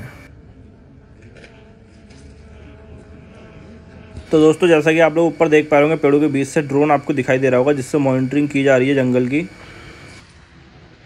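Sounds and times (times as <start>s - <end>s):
drone humming overhead: 0.0s - 11.0s.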